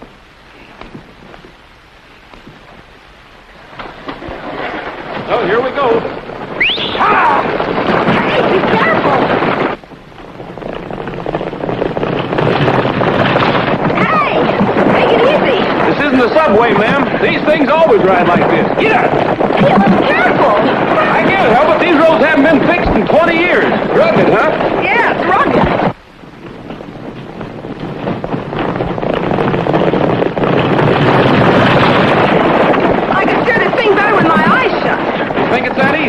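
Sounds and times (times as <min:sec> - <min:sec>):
hoofbeats and wheels rumbling: 0:00.0 - 0:36.0.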